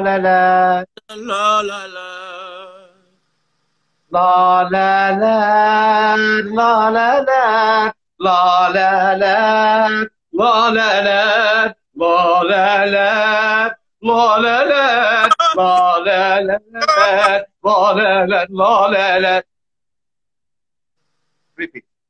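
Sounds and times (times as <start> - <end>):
quieter higher voice: 15.2 - 15.8, 16.8 - 17.3.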